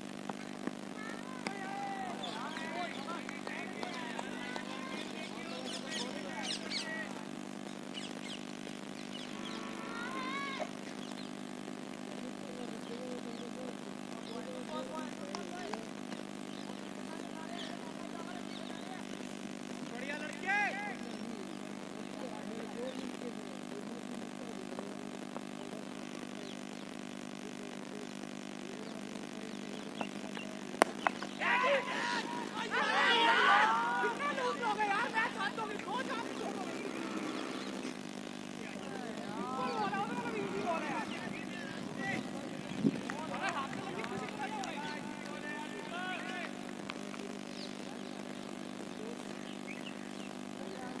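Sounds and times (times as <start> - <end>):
low mechanical hum: 0.0 - 51.0
distant shouts: 0.9 - 8.3, 9.1 - 11.0, 29.9 - 47.8.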